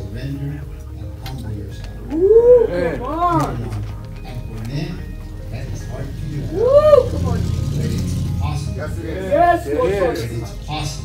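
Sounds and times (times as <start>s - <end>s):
man's drawn-out exclamation: 2.1s - 3.6s, 6.4s - 7.6s.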